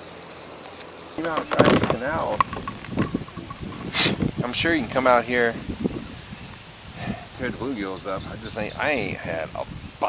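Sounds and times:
wind rumbling on microphone: 0:01.2 - 0:10.0.

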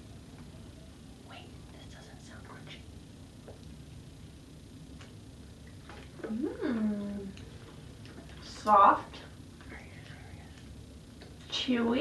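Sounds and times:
person humming low: 0:06.2 - 0:07.4.

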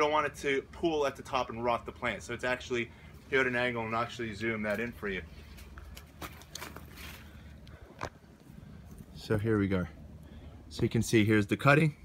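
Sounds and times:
low background rumble: 0:00.0 - 0:12.0
footsteps on wood-chip mulch: 0:04.6 - 0:07.4.

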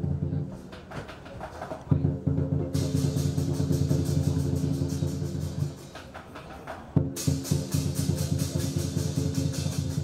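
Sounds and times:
fast drum roll: 0:00.0 - 0:10.0.

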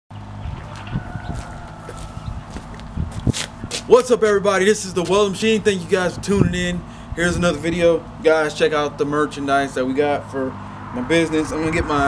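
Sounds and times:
steady low hum: 0:00.2 - 0:12.0
footsteps thumping: 0:00.6 - 0:03.9.

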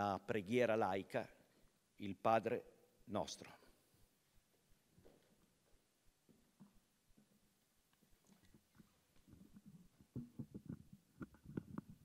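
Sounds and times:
microphone handling thumps: 0:09.2 - 0:12.0.

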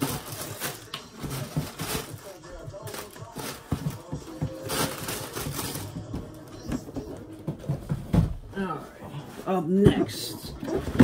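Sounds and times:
tissue paper rustling: 0:00.0 - 0:07.8
light knocks of shoes and boxes: 0:00.9 - 0:08.6.

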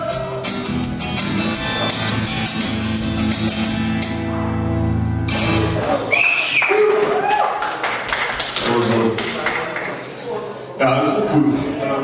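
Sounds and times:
live guitar music: 0:00.0 - 0:06.2.

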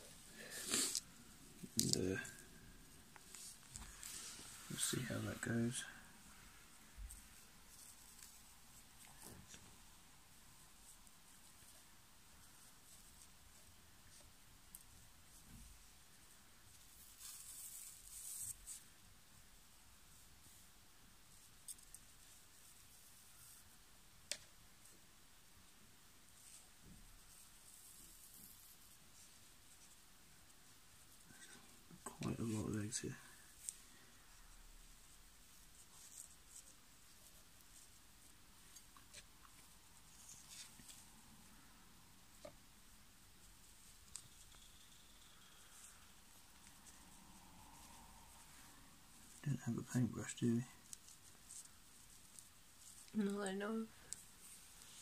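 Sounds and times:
faint rustling of silk: 0:00.0 - 0:55.0.

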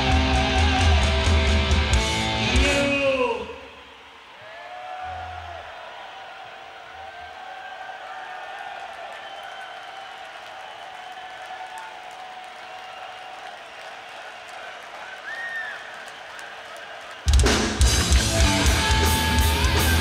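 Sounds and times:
crowd cheering and shouting: 0:00.0 - 0:20.0.

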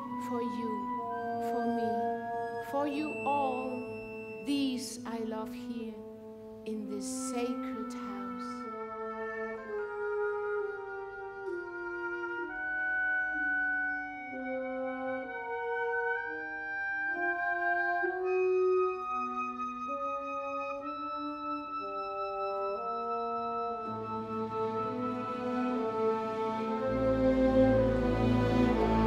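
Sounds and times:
orchestra playing slow passage: 0:07.7 - 0:29.0.

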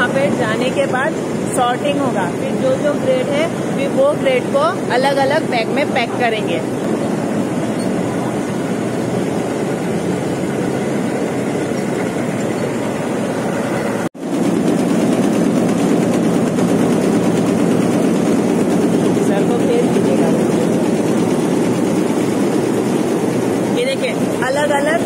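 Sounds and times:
factory machinery running: 0:00.0 - 0:25.0.

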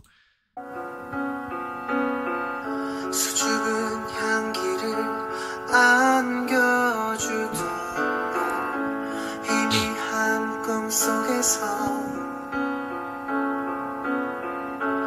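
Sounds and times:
piano chords: 0:00.6 - 0:15.0
person singing: 0:02.9 - 0:12.4.

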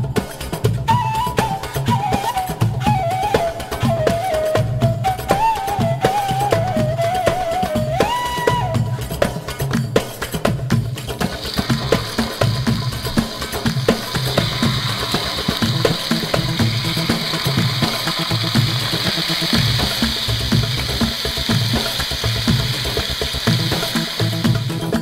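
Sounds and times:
background music with steady beat: 0:00.0 - 0:25.0
meat skewers sizzling in oil: 0:11.0 - 0:25.0.

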